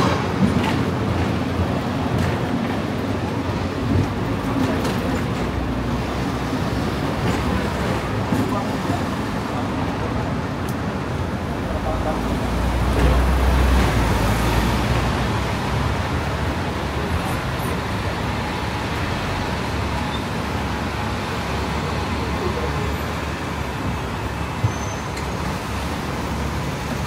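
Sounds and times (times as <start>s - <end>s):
bus passing rumble: 0.0s - 27.0s
city road traffic: 0.0s - 27.0s
tram running noise: 0.0s - 27.0s.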